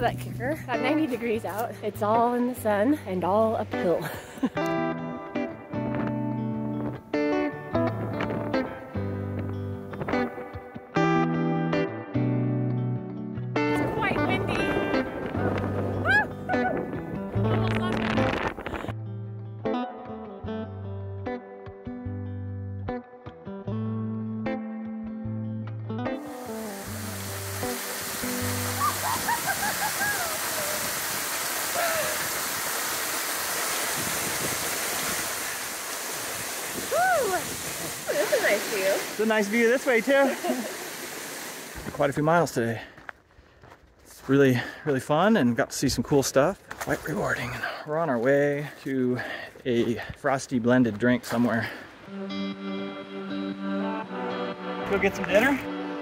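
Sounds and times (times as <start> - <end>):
guitar and bass music: 0.0 - 30.6, 50.8 - 56.0
waterfall rushing: 26.2 - 42.0.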